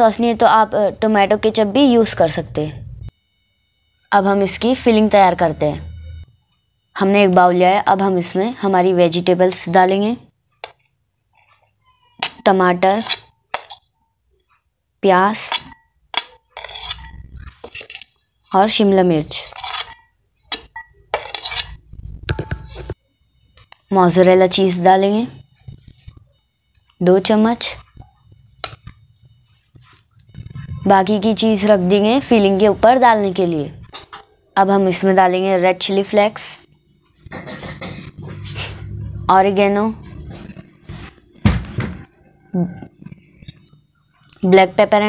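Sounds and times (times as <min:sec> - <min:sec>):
metal spoon scraping plate: 0:11.6 - 0:13.9, 0:15.3 - 0:18.2, 0:19.3 - 0:21.8
dull thunk: 0:41.4 - 0:42.0.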